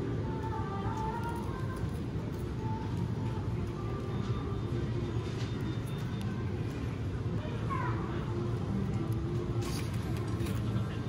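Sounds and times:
shop interior hum: 0:00.0 - 0:11.0
faint voices: 0:00.3 - 0:11.0.

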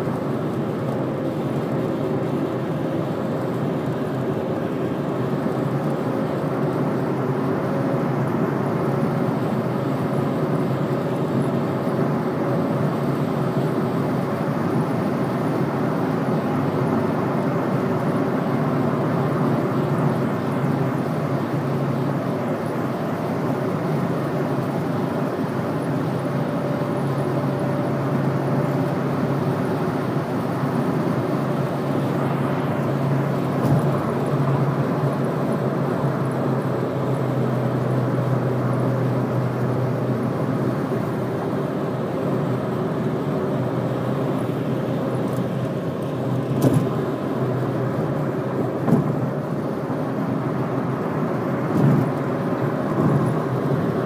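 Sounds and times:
car road and engine noise: 0:00.0 - 0:54.0.

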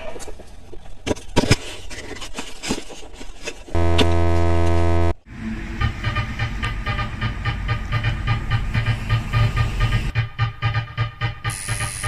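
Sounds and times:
loud electric buzz: 0:03.8 - 0:05.2.

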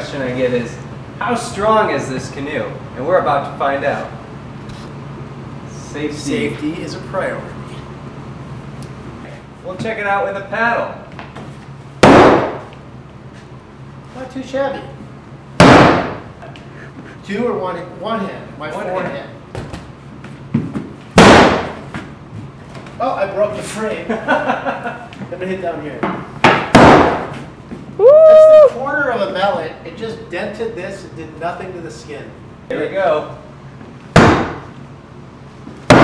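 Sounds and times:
man's loud vocal exclamation: 0:28.0 - 0:28.8.

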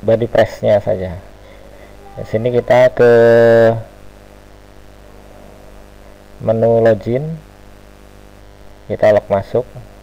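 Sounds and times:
low room hum: 0:00.0 - 0:10.0
man holding drawn-out syllable: 0:01.1 - 0:04.0.

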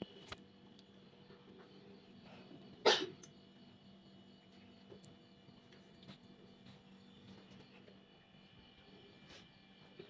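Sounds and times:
person coughing: 0:02.8 - 0:03.2.

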